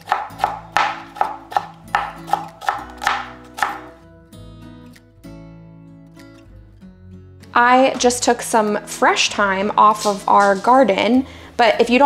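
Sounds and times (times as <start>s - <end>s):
knife chopping on plastic board: 0.0s - 3.9s
soft guitar background music: 0.0s - 12.0s.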